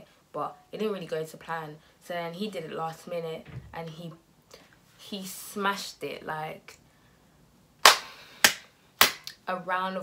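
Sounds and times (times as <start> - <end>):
woman clapping hands: 7.8 - 9.4.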